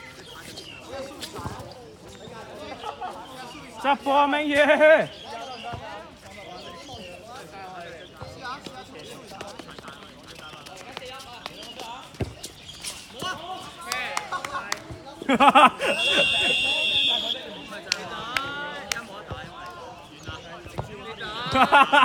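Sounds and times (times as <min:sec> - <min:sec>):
players shouting: 0:13.2 - 0:19.6.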